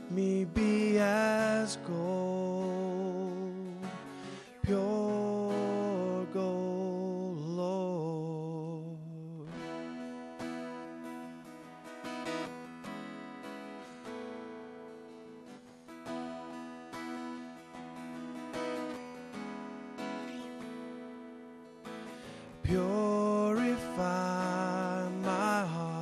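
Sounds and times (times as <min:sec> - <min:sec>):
acoustic guitar strumming and picking: 0:00.0 - 0:26.0.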